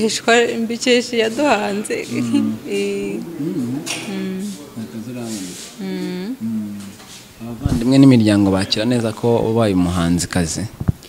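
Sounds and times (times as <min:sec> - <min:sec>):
person speaking: 0:01.4 - 0:04.7, 0:05.3 - 0:07.0
person humming: 0:02.0 - 0:04.6, 0:05.8 - 0:07.0.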